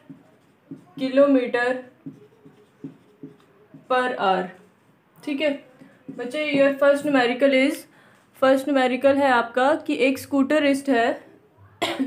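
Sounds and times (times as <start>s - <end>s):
marker pen writing on whiteboard: 0.0s - 8.2s.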